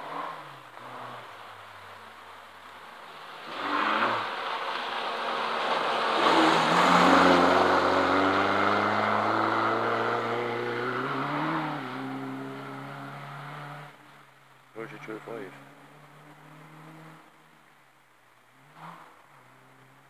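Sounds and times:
rally car engine passing: 0:00.0 - 0:17.8.

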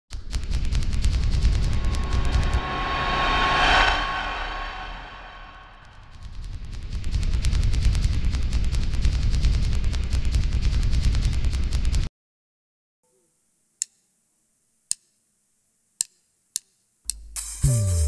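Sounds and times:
electronic whoosh: 0:01.4 - 0:06.0.

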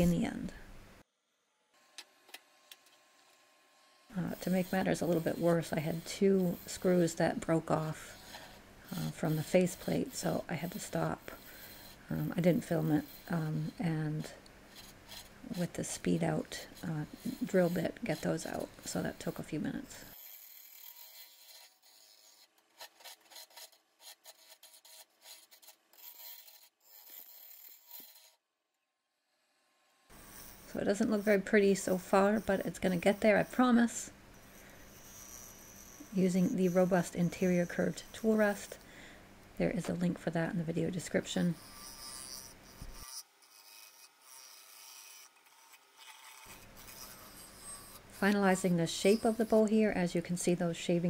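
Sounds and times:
bowl gouge scraping spinning wood: 0:00.0 - 0:00.6, 0:04.0 - 0:28.4, 0:30.1 - 0:38.9, 0:39.6 - 0:51.0.

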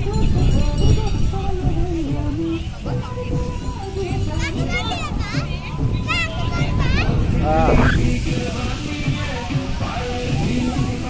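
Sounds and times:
dense low rumble: 0:04.2 - 0:09.8
shrill voices calling out: 0:04.4 - 0:11.0
person shouting: 0:07.4 - 0:08.1.

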